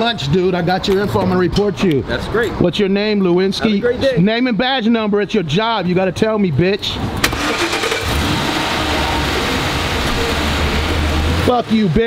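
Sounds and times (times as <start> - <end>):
car engine starting and idling: 7.0 - 12.0.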